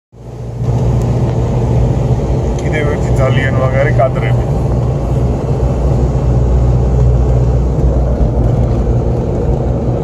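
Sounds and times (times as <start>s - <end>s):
car engine drone: 0.2s - 10.0s
road noise: 0.2s - 10.0s.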